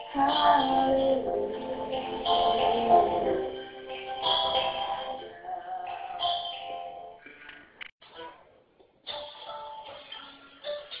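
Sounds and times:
sped-up high-pitched singing: 0.0 - 6.9.

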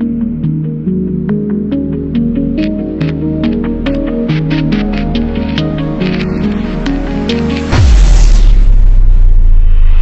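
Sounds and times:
background music with held notes: 0.0 - 8.6
deep cinematic boom: 7.7 - 10.0.

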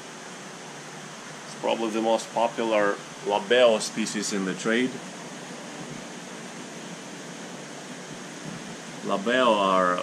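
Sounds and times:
water circulation hiss: 0.0 - 10.0
air handling noise: 1.5 - 9.4.

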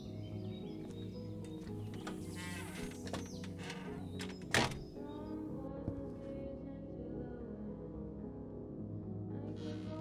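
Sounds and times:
background music: 0.0 - 10.0
glass door creaking shut: 1.4 - 5.0.

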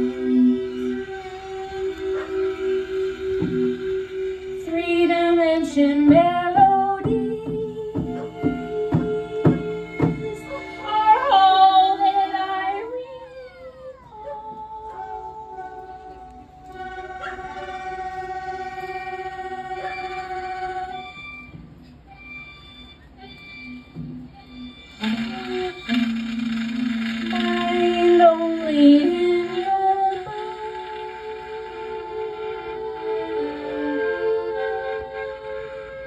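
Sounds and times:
saxophone: 0.0 - 36.0
violin: 0.0 - 36.0.

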